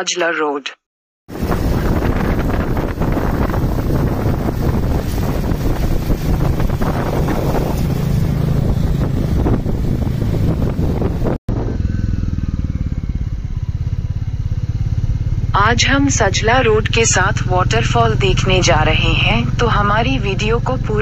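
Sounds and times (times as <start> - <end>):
wind on microphone: 1.3 - 13.6
motorcycle engine running: 1.3 - 21.0.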